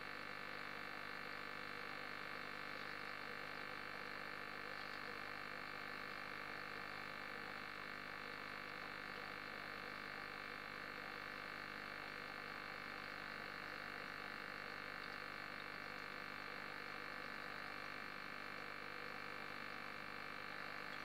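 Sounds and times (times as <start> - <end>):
aquarium filter running: 0.0 - 21.0.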